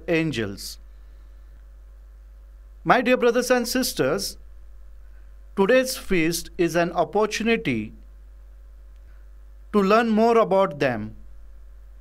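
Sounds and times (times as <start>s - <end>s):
man speaking: 0.0s - 0.8s, 2.8s - 4.4s, 5.6s - 8.0s, 9.7s - 11.2s
steady low hum: 0.0s - 12.0s.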